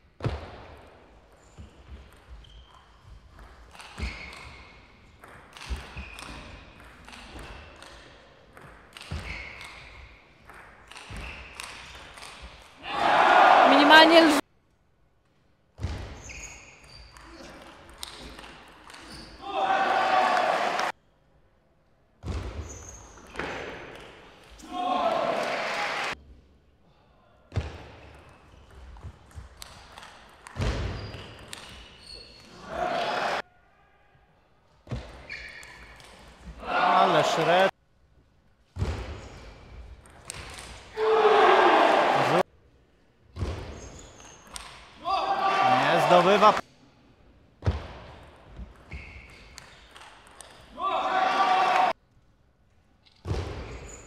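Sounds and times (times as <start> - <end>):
crowd shouting and cheering: 12.8 - 14.4, 19.4 - 20.9, 24.6 - 26.2, 32.6 - 33.4, 36.6 - 37.7, 41.0 - 42.4, 45.0 - 46.6, 50.8 - 52.0.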